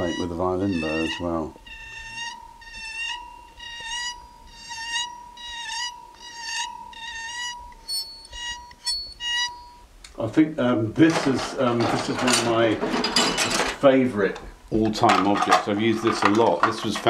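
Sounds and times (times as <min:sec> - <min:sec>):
bowed metal spring ringing: 0:00.0 - 0:10.3.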